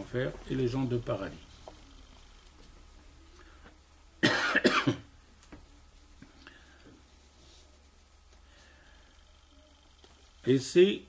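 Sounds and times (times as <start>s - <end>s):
man coughing: 4.2s - 5.1s.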